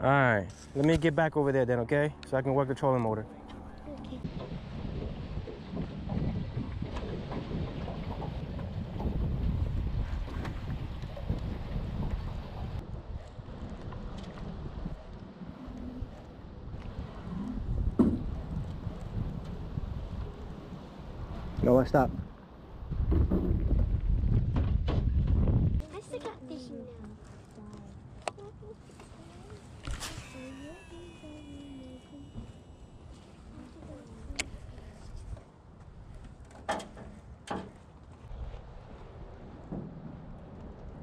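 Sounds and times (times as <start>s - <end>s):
wind buffeting microphone: 3.8s - 26.1s.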